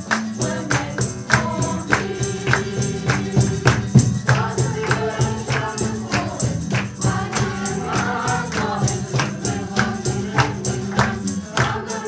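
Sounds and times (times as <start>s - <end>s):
handclaps: 0.0s - 12.0s
tambourine jingling: 0.0s - 12.0s
women's choir singing: 0.0s - 12.0s.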